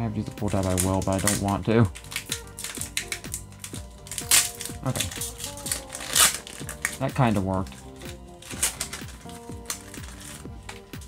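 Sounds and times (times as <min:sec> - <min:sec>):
background music: 0:00.0 - 0:11.0
foil wrapper crinkling: 0:00.3 - 0:11.0.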